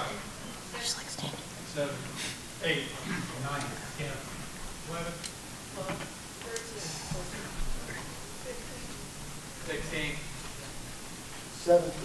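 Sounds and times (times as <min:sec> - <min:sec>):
quiet indistinct voices: 0:00.0 - 0:12.0.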